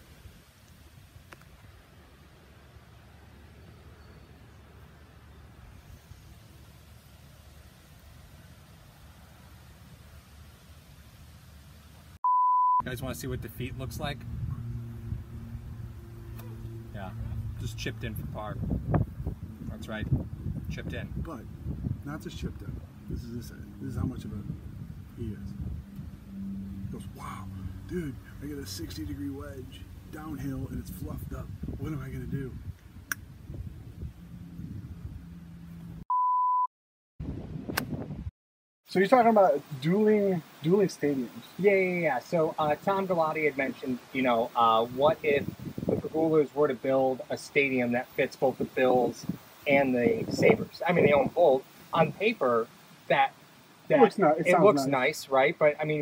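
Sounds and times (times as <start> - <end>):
censor bleep: 12.2 - 12.9, 36.1 - 36.7
low hum: 13.1 - 36.0
faint background noise: 38.9 - 56.0
person speaking: 46.6 - 56.0.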